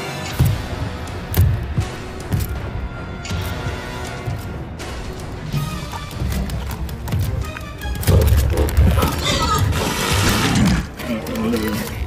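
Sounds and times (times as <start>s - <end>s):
tense film score: 0.0s - 12.0s.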